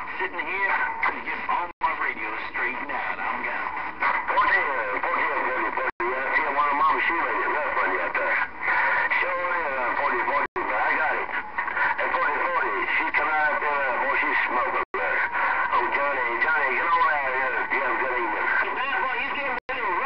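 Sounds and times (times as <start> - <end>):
garbled voices over radio: 0.0 - 20.0
radio static: 0.0 - 20.0.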